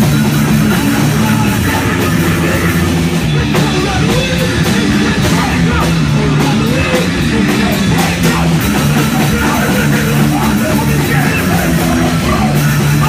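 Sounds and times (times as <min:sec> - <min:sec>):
person singing: 0:00.0 - 0:13.0
punk band playing live: 0:00.0 - 0:13.0.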